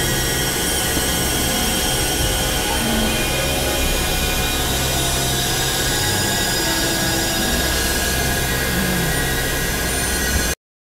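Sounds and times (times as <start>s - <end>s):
synthesizer noise drone music: 0.0s - 10.6s.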